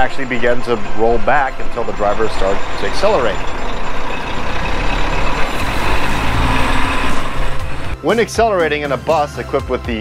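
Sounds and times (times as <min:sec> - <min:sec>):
diesel bus engine running: 0:00.0 - 0:08.0
road and exhaust noise: 0:00.0 - 0:08.0.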